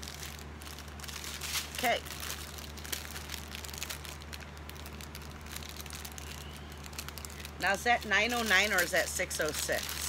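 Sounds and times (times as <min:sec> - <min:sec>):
plastic bags crinkling: 0:00.0 - 0:10.0
steady low hum: 0:00.0 - 0:10.0.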